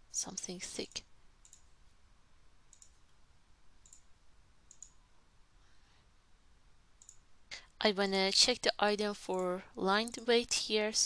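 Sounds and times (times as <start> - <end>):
computer mouse clicks: 0.9 - 1.7, 2.7 - 3.2, 3.8 - 5.0, 7.0 - 7.3, 9.3 - 10.4.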